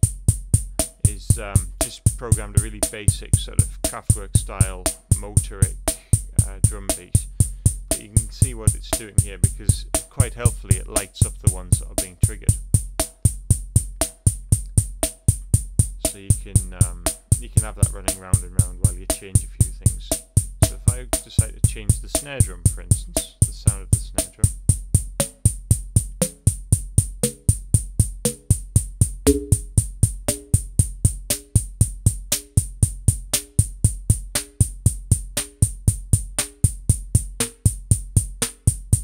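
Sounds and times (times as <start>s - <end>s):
electronic drum machine beat: 0.0s - 39.0s
ticking hi-hats: 0.0s - 39.0s
synthesized snare: 29.3s - 29.7s.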